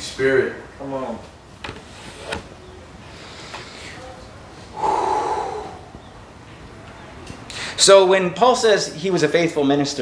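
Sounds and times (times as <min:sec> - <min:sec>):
person's breathy vocal sound: 0:04.7 - 0:06.0.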